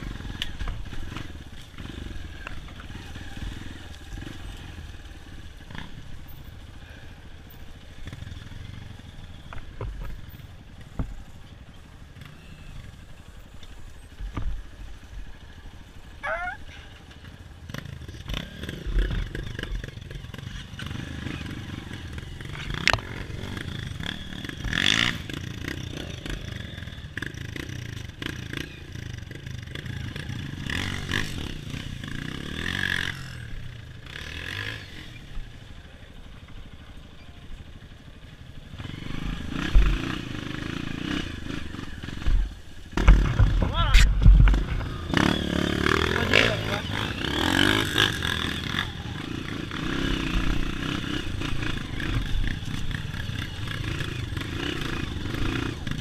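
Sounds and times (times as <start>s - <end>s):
motorbike engine revving: 0.0s - 10.3s, 16.1s - 35.8s, 37.9s - 56.0s
bike clattering and knocking: 43.0s - 45.0s.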